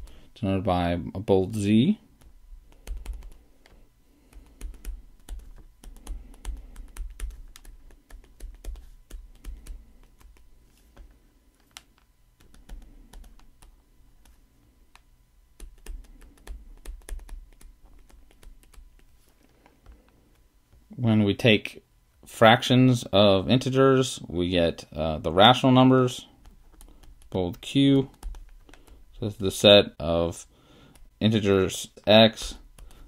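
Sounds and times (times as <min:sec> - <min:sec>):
stylus tapping on tablet screen: 0:02.2 - 0:11.1, 0:15.0 - 0:19.1.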